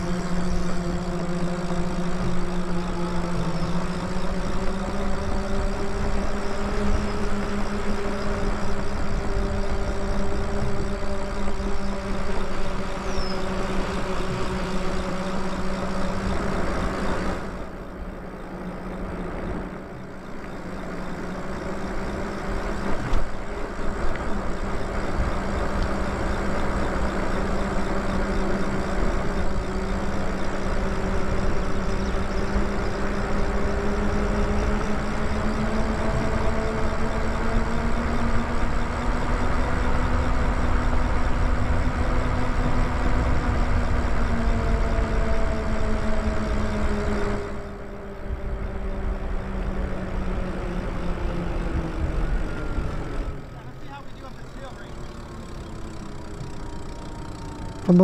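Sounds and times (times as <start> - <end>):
electric bike motor whining: 0.0 - 58.0.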